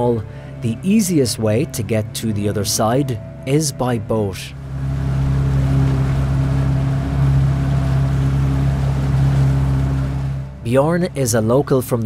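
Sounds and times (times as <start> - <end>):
boat engine humming: 0.0 - 12.0
water rushing along hull: 0.0 - 12.0.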